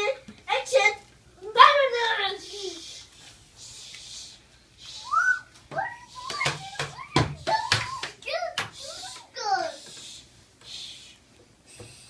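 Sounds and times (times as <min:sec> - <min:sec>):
young children's voices: 0:00.0 - 0:03.1, 0:04.9 - 0:11.1.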